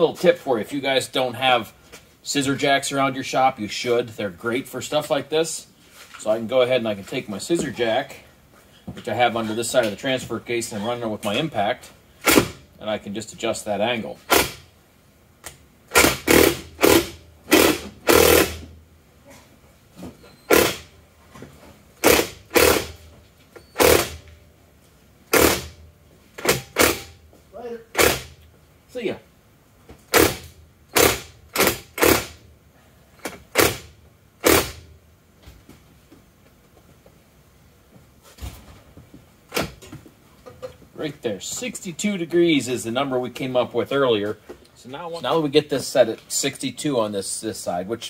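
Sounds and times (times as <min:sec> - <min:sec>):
impact wrench rattling bursts: 0:12.2 - 0:12.7, 0:14.2 - 0:14.7, 0:15.9 - 0:18.8, 0:20.5 - 0:21.0, 0:22.0 - 0:23.1, 0:23.7 - 0:24.3, 0:25.3 - 0:25.8, 0:26.4 - 0:27.3, 0:27.9 - 0:28.4, 0:30.0 - 0:32.5, 0:33.2 - 0:34.9.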